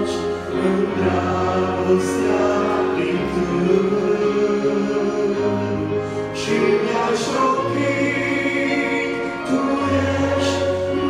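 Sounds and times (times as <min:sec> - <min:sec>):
accompaniment with held bass notes: 0:00.0 - 0:11.0
man singing into microphone: 0:00.0 - 0:11.0.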